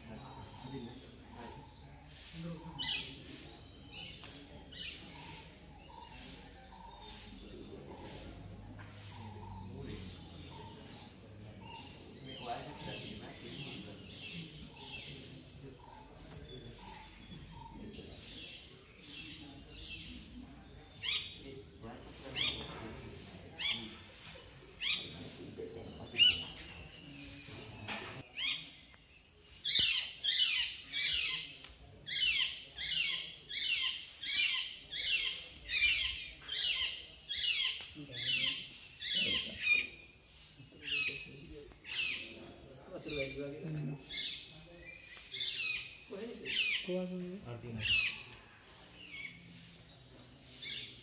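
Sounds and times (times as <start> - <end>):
bird calling: 0.0 - 51.0.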